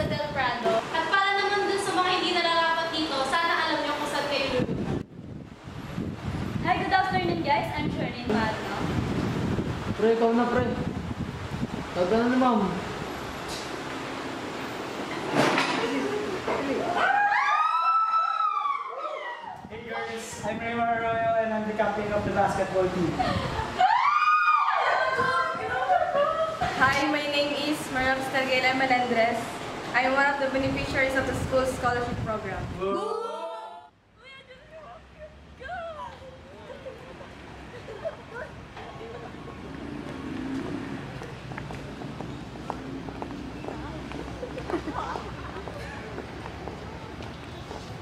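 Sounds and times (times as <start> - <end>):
outdoor background noise: 0.0 - 48.0
voices: 18.5 - 48.0
person wailing: 32.8 - 33.9.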